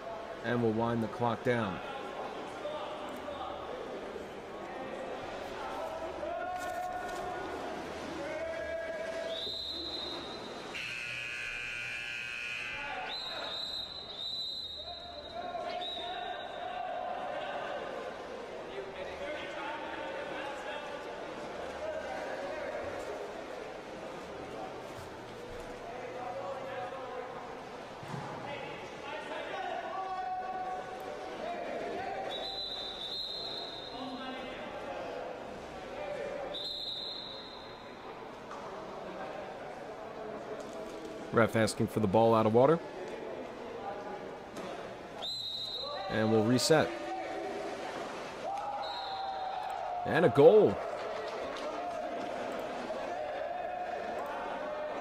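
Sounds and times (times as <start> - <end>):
referee whistle blasts: 9.3 - 16.6, 32.3 - 34.2, 36.5 - 38.0, 45.2 - 46.2, 48.6 - 49.6
buzzer-like horn: 10.7 - 12.9.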